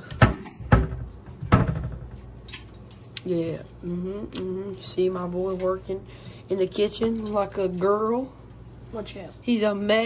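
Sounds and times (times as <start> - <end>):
sharp knocks: 0.2 - 2.2.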